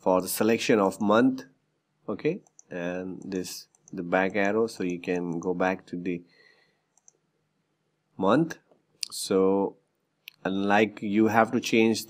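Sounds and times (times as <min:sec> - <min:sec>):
person speaking: 0:00.0 - 0:06.3, 0:08.2 - 0:12.0.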